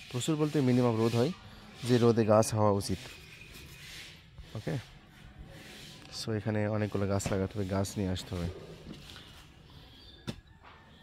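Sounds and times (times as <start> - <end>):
man talking: 0.1 - 3.1, 4.6 - 4.9, 6.1 - 8.6.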